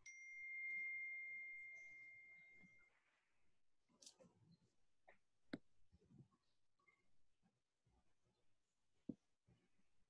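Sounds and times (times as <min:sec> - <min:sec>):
ringing chime tone: 0:00.0 - 0:03.1.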